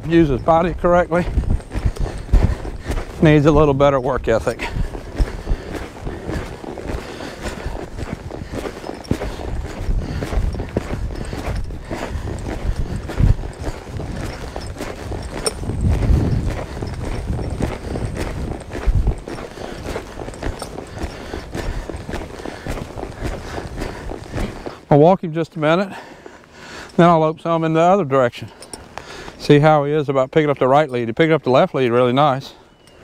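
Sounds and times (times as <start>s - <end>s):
heavy low thumps: 0.0s - 24.7s
muffled hoofbeats on dirt: 0.0s - 33.0s.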